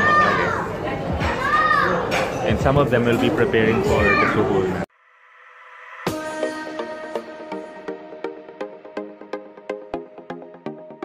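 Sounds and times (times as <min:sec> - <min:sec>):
crowded restaurant noise: 0:00.0 - 0:04.9.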